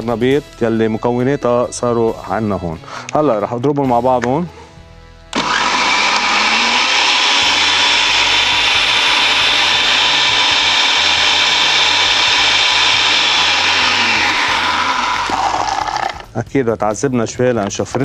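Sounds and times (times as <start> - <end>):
blender running at high speed: 5.4 - 16.3.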